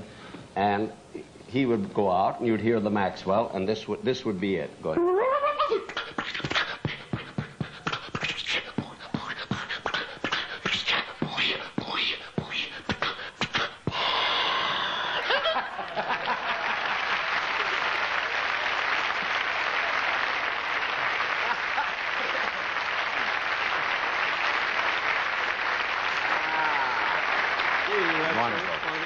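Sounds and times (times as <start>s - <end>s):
audience applauding and laughing: 14.9s - 29.0s.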